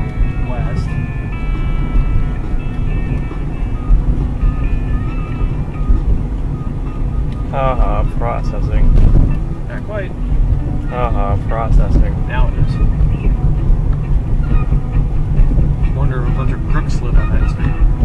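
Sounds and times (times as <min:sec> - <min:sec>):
car road and engine rumble: 0:00.0 - 0:18.0
rock music: 0:00.0 - 0:18.0.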